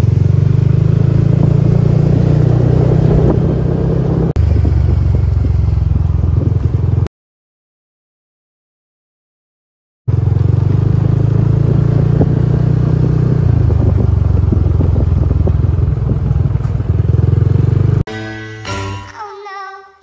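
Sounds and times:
motorcycle engine and road rumble: 0.0s - 7.1s, 10.1s - 18.1s
music: 18.1s - 20.0s.

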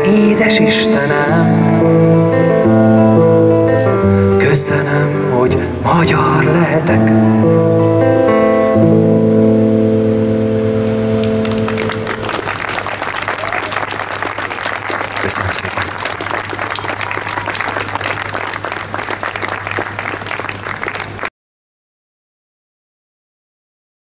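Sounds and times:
acoustic guitar chord ringing: 0.0s - 12.6s
audience applauding: 10.8s - 21.3s.

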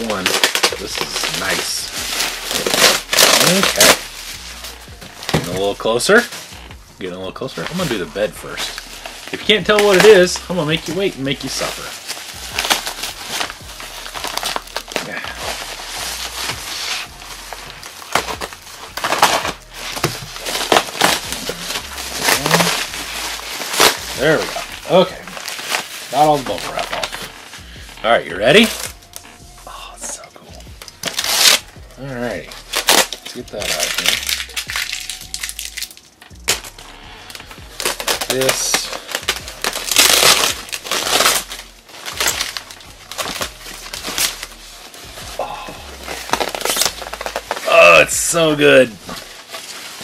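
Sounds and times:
bubble wrap crinkling: 0.0s - 50.0s.

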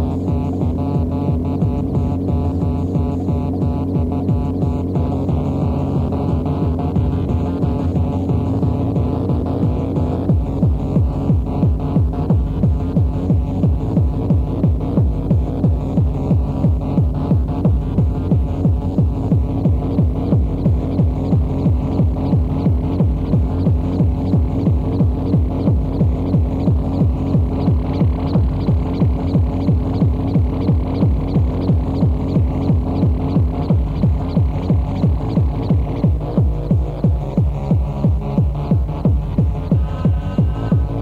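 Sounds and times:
driving electronic beat: 0.0s - 41.0s
heavy regular pulse: 0.0s - 41.0s
humming synth line: 0.0s - 41.0s.

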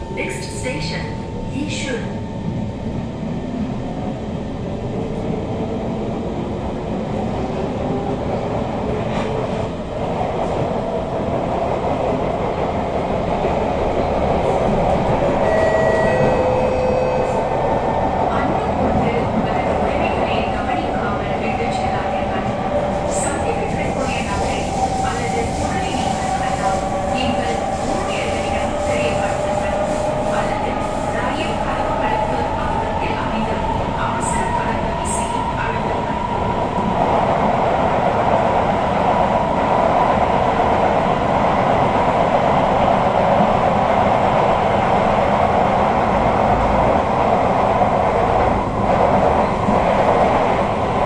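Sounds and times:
wheels rumbling on rail: 1.3s - 51.0s.

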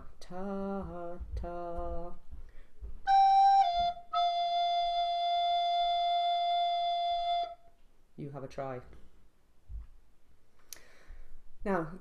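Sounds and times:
recorder notes: 3.0s - 7.8s.

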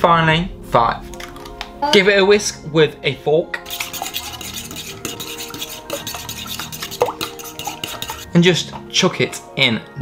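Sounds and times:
fork whisking eggs in a bowl: 3.6s - 8.8s.

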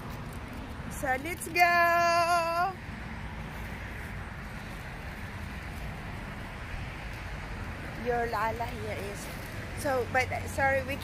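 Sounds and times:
cart wheels rolling over asphalt: 0.0s - 11.0s.

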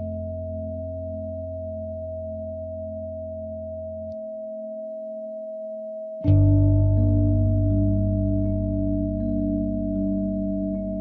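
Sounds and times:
soft low drone: 0.0s - 4.6s, 6.2s - 11.0s
steady sine tone: 0.0s - 11.0s.

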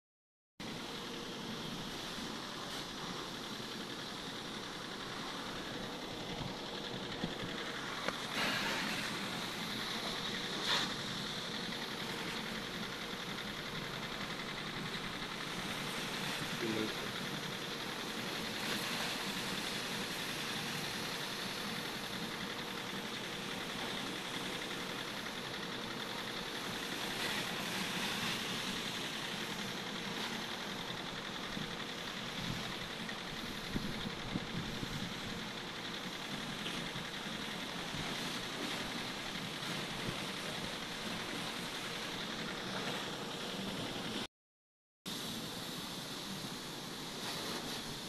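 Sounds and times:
pressure washer spraying: 1.4s - 43.8s, 45.4s - 48.0s.

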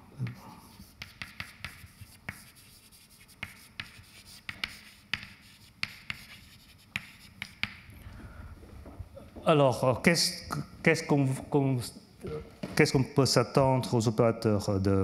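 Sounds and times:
chalk tapping and scratching: 0.2s - 7.9s.

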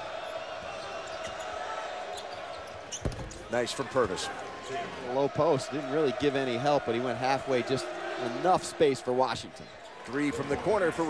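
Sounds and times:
large arena crowd noise: 0.0s - 11.0s.

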